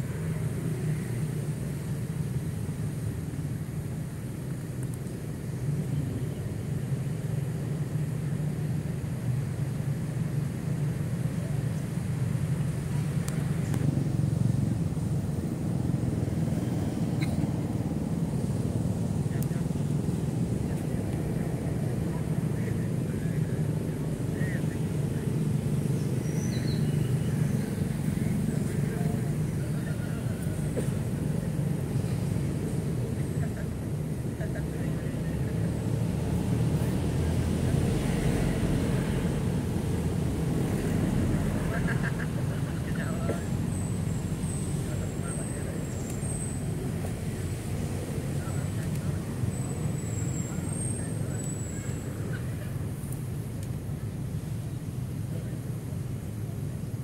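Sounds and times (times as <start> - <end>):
distant road traffic rumble: 0.0 - 57.0
faint indistinct voices: 19.1 - 39.6, 40.6 - 56.8.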